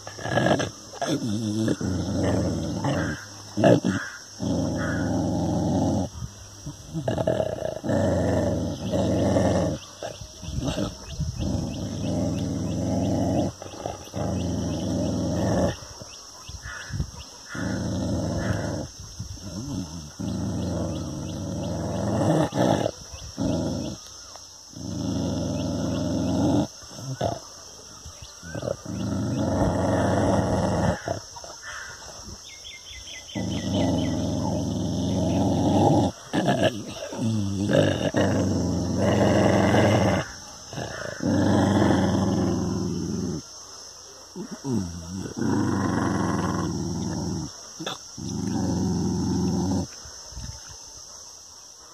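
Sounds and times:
dog growling: 0:00.0 - 0:27.6, 0:28.3 - 0:43.6, 0:44.3 - 0:50.0.

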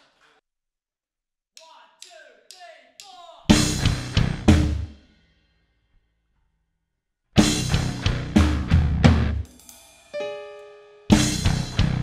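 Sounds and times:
sharp count-in taps: 0:01.6 - 0:03.5.

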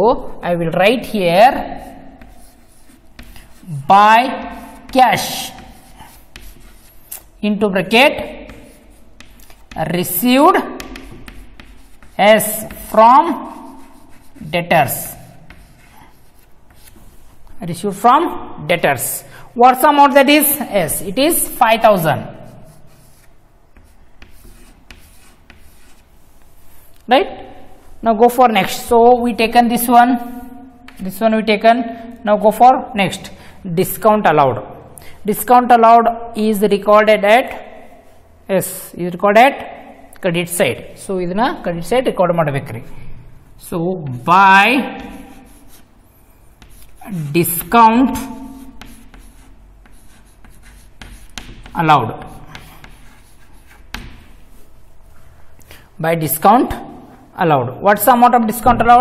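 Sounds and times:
chalk tapping and scratching on chalkboard: 0:01.7 - 0:17.6, 0:20.8 - 0:27.1, 0:30.9 - 0:31.2, 0:44.8 - 0:54.9.

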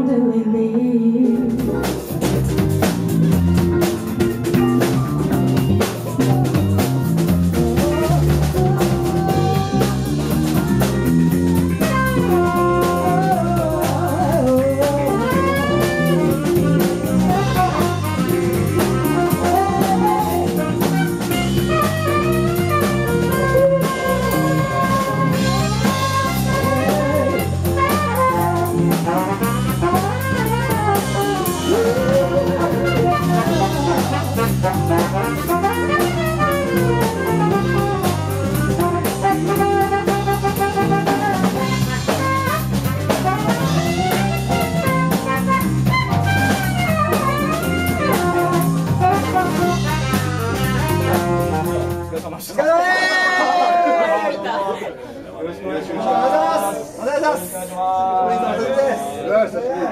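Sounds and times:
wavering gliding lead melody: 0:01.0 - 0:51.9
drum kit: 0:01.3 - 0:54.0
electric bass: 0:01.4 - 0:52.4.

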